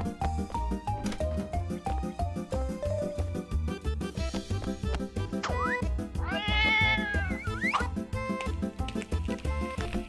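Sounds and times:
cat meowing: 6.2 - 7.6.

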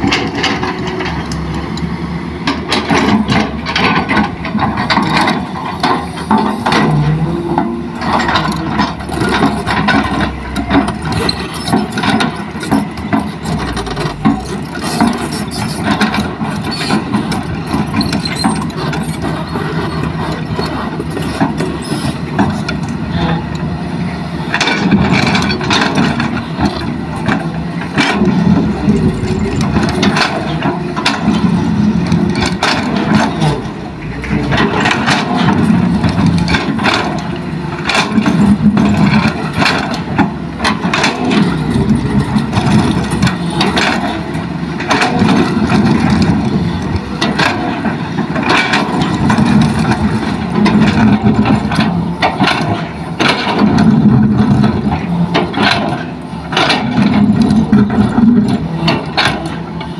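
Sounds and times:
excavator diesel engine: 0.0 - 59.9
steel bucket and rocks clanking: 24.6 - 59.9.

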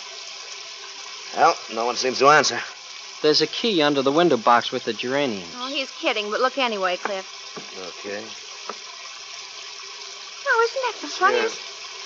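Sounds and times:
rain hissing: 0.0 - 12.0.

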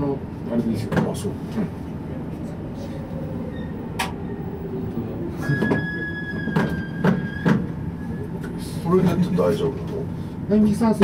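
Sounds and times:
subway train rumble: 0.0 - 11.0.

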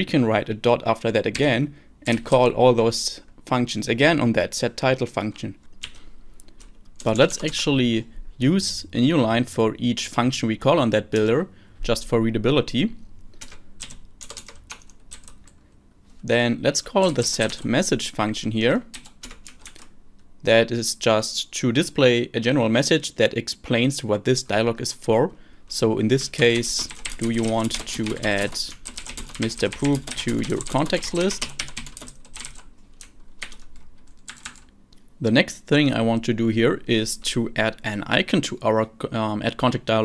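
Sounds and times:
computer keyboard typing: 13.4 - 15.6, 17.0 - 17.7, 18.9 - 19.9, 26.4 - 34.7.

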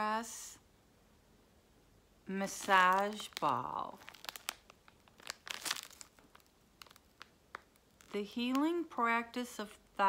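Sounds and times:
packaging crinkling: 2.4 - 8.8.

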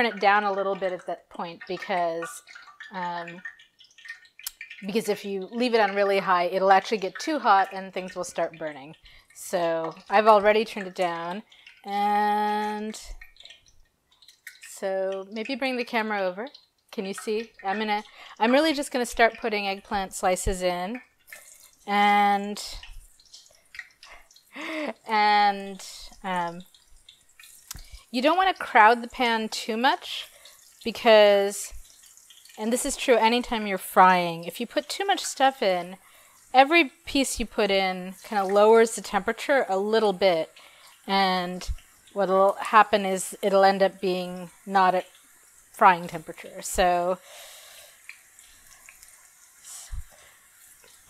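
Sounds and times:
eggplant frying in oil: 0.0 - 51.0.

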